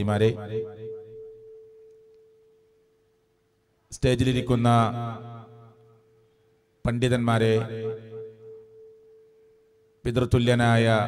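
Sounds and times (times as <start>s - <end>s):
amplified man's voice echo: 0.0s - 1.3s, 3.9s - 6.0s, 6.8s - 8.6s, 10.0s - 11.0s
public address hum: 0.0s - 1.8s, 3.9s - 6.0s, 6.8s - 8.6s, 10.0s - 11.0s.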